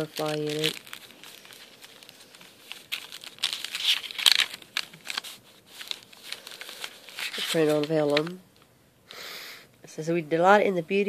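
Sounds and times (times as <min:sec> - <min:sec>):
paper pages rustling: 0:00.0 - 0:08.4.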